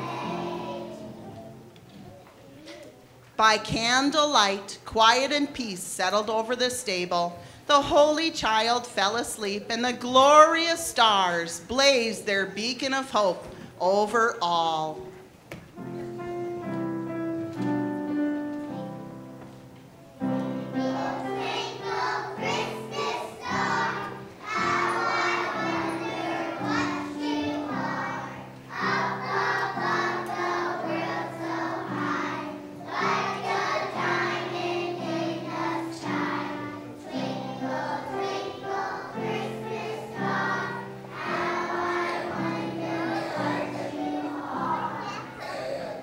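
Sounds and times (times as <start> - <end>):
children singing: 0.0 - 1.7, 20.2 - 46.0
piano accompaniment: 0.0 - 2.2, 14.4 - 46.0.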